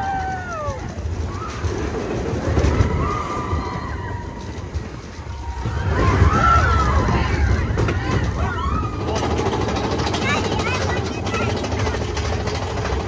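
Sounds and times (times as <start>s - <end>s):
riders screaming: 0.0s - 10.0s
roller coaster train rumbling: 0.0s - 13.0s.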